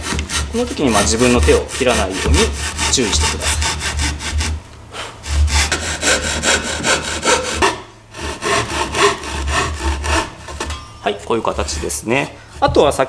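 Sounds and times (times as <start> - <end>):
pull saw cutting wooden board: 0.0 - 4.6, 5.2 - 13.0.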